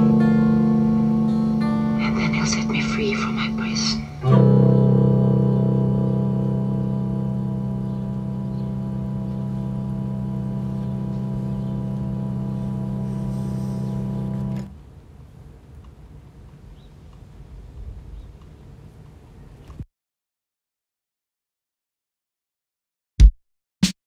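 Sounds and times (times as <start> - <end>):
guitar chord ringing: 0.0 - 14.7.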